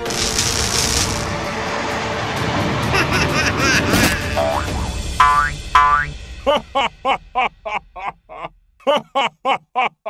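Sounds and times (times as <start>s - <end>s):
buzzy blasts: 0.0s - 1.5s.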